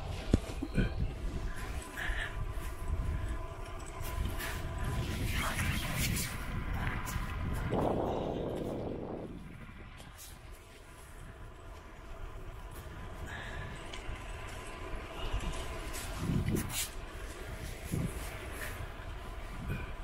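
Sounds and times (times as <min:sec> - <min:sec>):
bicycle tyres on asphalt: 0:00.0 - 0:20.0
wind rumbling on microphone: 0:00.0 - 0:20.0.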